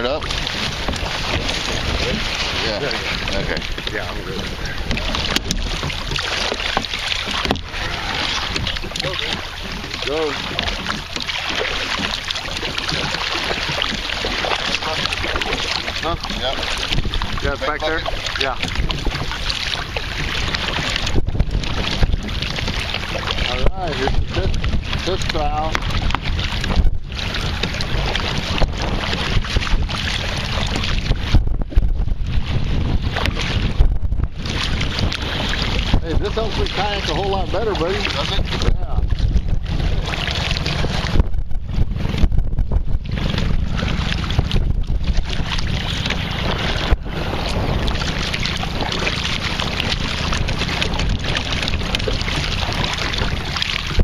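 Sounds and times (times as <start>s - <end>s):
paddle splashing: 0.0s - 54.0s
water washing around hull: 0.0s - 54.0s
wind noise on microphone: 0.0s - 54.0s.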